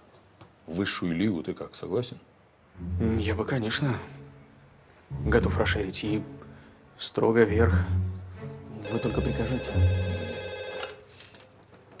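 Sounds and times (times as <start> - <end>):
desk telephone ringing: 8.8 - 11.1.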